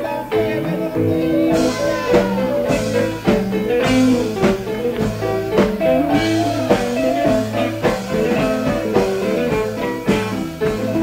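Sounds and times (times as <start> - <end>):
bass guitar: 0.0 - 11.0
guitar: 0.0 - 11.0
drum kit hits: 1.0 - 11.0.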